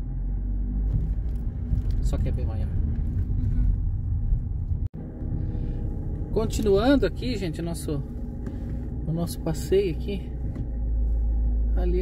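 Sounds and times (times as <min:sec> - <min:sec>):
car rumbling on cobblestones: 0:00.0 - 0:12.0.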